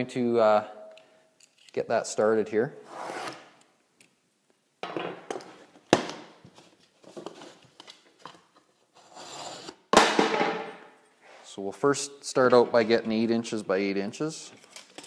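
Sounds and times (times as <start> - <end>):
scraping and sliding on workbench: 9.0 - 9.8.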